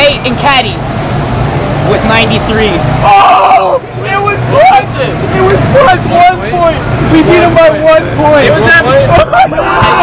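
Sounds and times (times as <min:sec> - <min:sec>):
steady low hum: 0:00.0 - 0:09.8
young men talking excitedly: 0:00.0 - 0:10.0.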